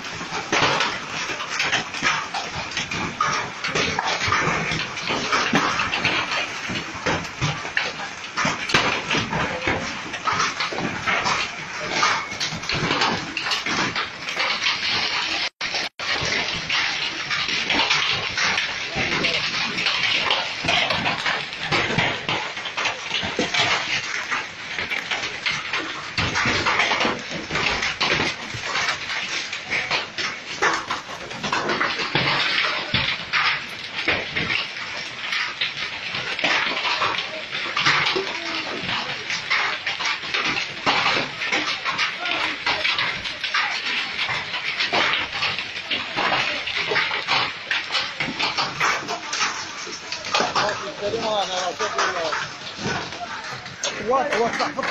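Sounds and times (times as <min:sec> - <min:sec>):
hailstones clattering: 0:00.0 - 0:54.9.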